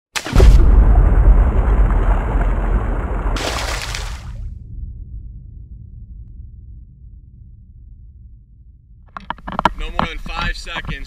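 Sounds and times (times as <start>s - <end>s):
deep boom with low rumble: 0.3s - 9.1s.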